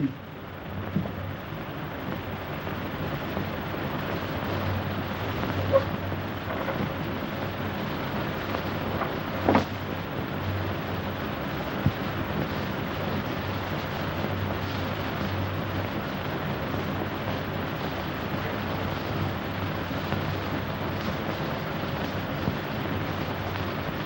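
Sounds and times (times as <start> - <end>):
film soundtrack hiss and hum: 0.0 - 24.0.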